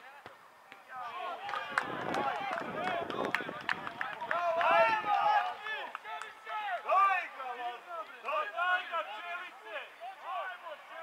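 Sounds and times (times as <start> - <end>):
players shouting: 4.0 - 11.0.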